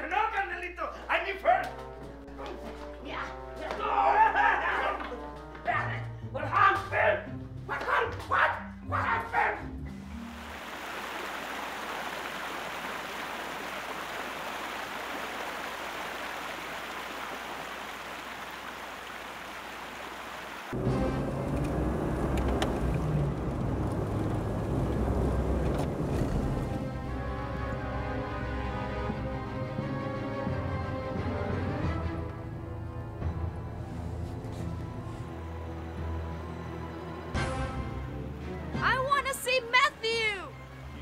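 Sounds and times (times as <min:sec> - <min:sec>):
car driving heard from inside: 0:20.8 - 0:27.0.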